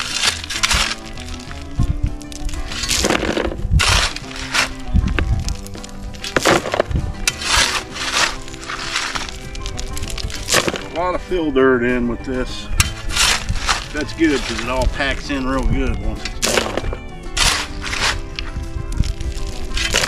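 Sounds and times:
rocks clattering into plastic cart: 0.0s - 11.2s, 12.8s - 20.0s
shovel scraping rock: 0.0s - 11.2s, 12.8s - 15.4s, 16.2s - 20.0s
background music: 0.0s - 20.0s.

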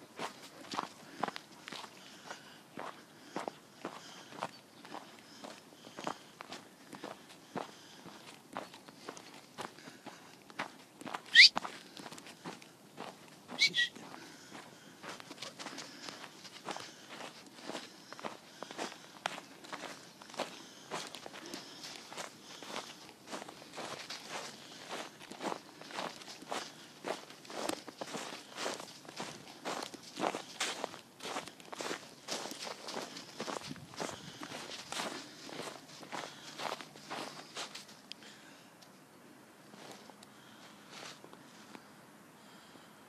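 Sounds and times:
footsteps in snow: 0.2s - 38.0s.

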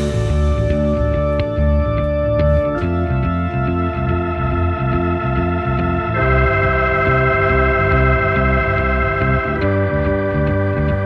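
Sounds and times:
held keyboard chords: 0.0s - 11.0s
repeating low bass pattern: 0.0s - 11.0s.

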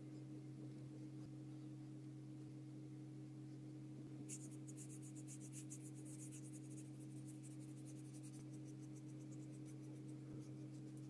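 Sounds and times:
low hum: 0.0s - 11.0s
paintbrush scratching on paper: 4.3s - 11.0s.

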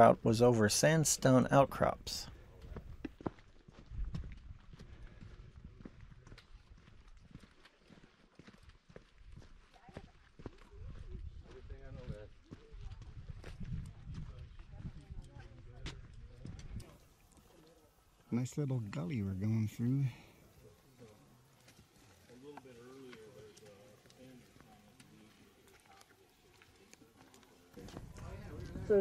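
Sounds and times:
footsteps on rock: 2.6s - 17.5s
wind rumble on microphone: 3.7s - 7.4s, 10.7s - 16.8s, 27.8s - 29.0s.

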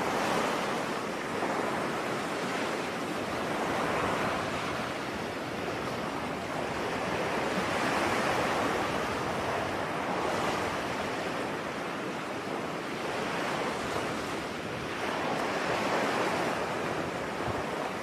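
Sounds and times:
ocean waves: 0.0s - 18.0s.

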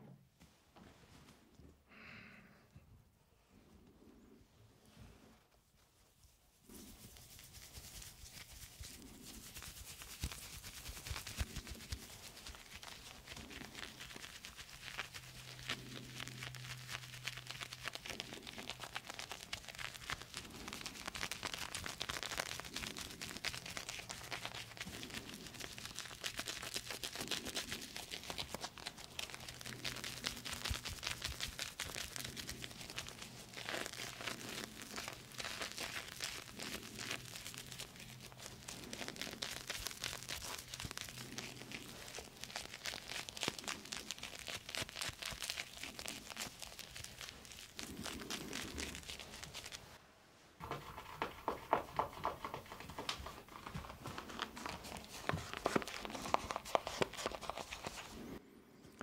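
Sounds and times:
shaving brush whipping soap lather: 6.7s - 49.9s, 50.6s - 58.3s.

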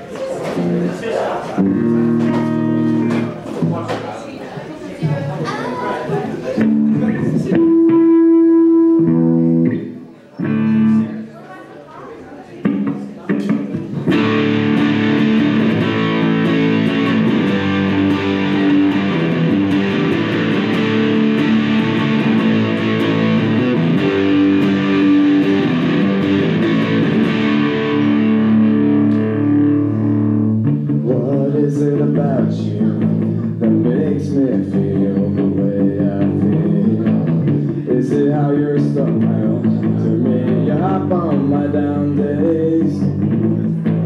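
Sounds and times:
guitar plucked: 0.4s - 3.9s, 6.5s - 11.3s, 12.6s - 44.0s.

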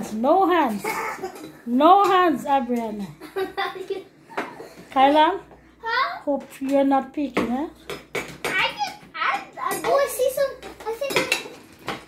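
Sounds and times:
utensils clinking on dishes: 0.7s - 2.9s, 7.8s - 12.0s
children's voices: 8.6s - 11.6s.

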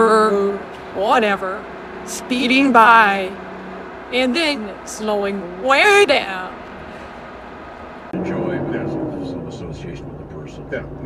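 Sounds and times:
low road noise rumble: 0.0s - 11.0s.

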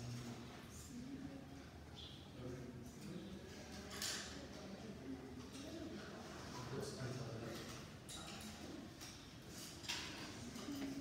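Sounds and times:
students talking quietly: 0.0s - 11.0s.

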